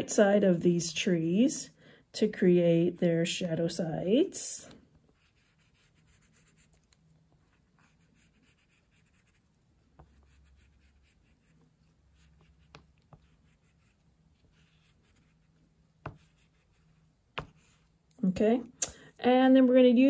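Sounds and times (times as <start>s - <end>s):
pastel scratching on paper: 5.1s - 18.0s.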